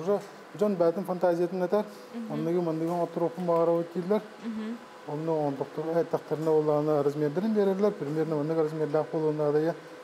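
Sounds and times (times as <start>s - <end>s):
man talking: 0.0s - 4.3s, 5.1s - 9.8s.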